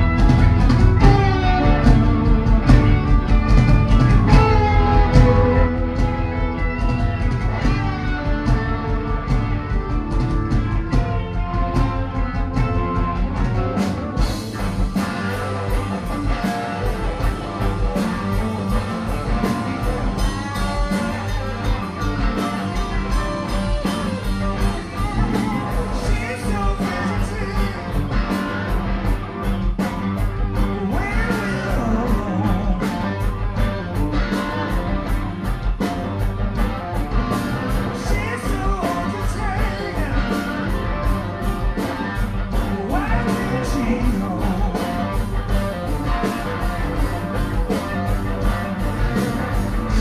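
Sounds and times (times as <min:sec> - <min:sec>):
drums steady beat: 0:00.0 - 0:50.0
electric guitar: 0:00.0 - 0:50.0
rock band playing live: 0:00.0 - 0:50.0.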